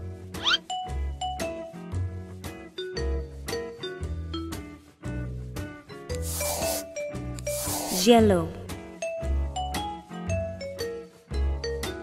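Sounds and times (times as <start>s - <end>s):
light children's music: 0.0s - 12.0s
scratchy paintbrush strokes: 6.2s - 8.2s.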